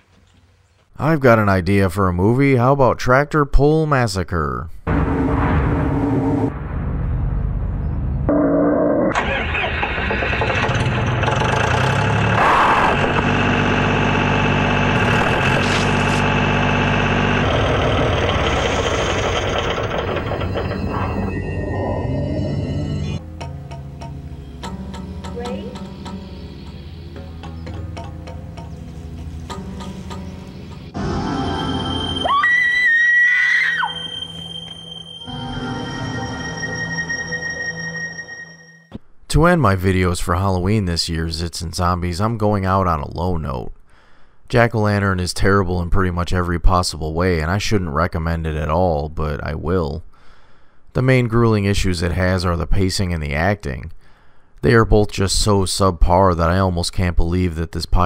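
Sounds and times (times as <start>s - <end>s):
tractor diesel engine running: 9.2s - 21.4s
woman screaming: 32.2s - 34.2s.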